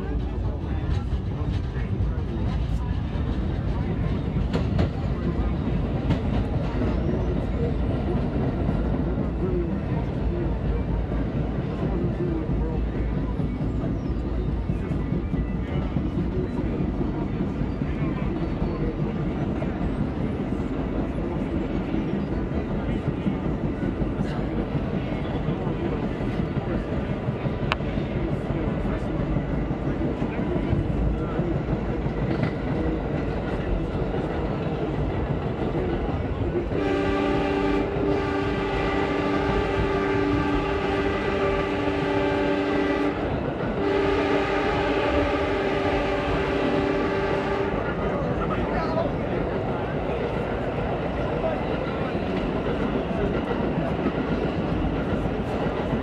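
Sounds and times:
subway train wheels rumbling: 0.0 - 56.0
train horn chord: 36.8 - 48.0.

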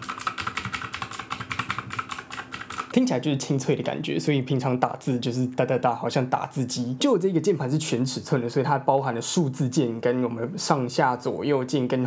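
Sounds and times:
mechanical keyboard typing: 0.0 - 3.0.

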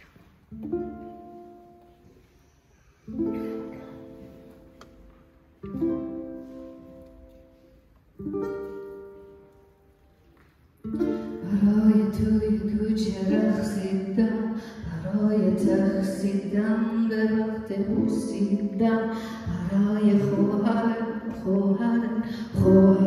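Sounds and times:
ukulele accompaniment: 0.0 - 23.0.

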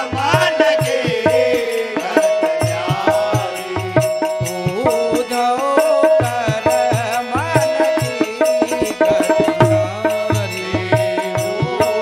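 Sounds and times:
person singing: 0.0 - 12.0.

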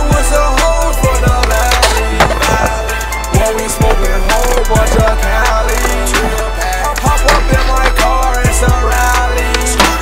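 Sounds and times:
hip hop beat with deep bass: 0.0 - 10.0
skateboard wheels rolling on concrete: 0.0 - 10.0
skateboard clacks: 1.3 - 2.8, 3.8 - 8.2, 9.4 - 10.0.

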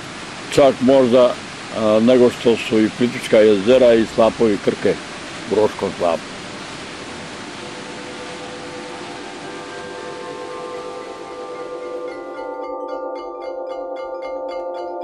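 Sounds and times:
waterfall rushing: 0.0 - 15.0
music with long held tones: 7.1 - 15.0
chiming mallet percussion notes: 7.6 - 15.0.

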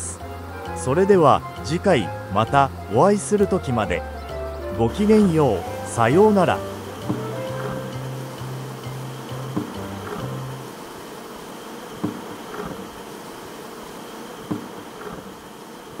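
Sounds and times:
low music: 0.0 - 10.7
bees flying past humming: 0.0 - 16.0
honeybees buzzing: 0.0 - 16.0.

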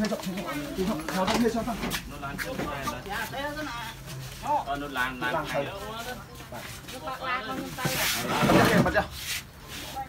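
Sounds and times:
close rubbing scraping noise: 4.0 - 10.0.

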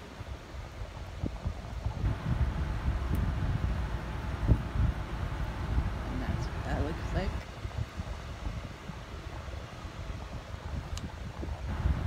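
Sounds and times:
microphone handling rumble: 0.9 - 12.0.

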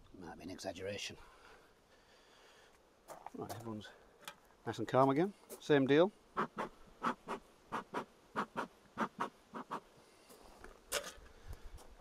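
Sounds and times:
bellows puffs of air: 6.4 - 9.9.

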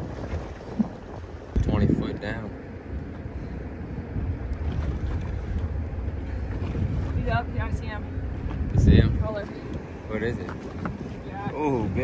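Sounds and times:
open water: 0.0 - 12.0
wind buffeting microphone: 0.0 - 12.0.

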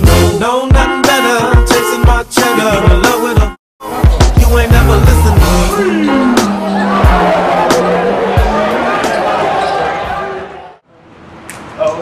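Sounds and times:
crowd noise and voices: 3.8 - 10.9.

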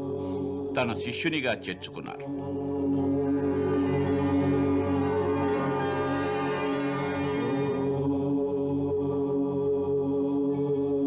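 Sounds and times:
low chanted drone: 2.2 - 9.7.

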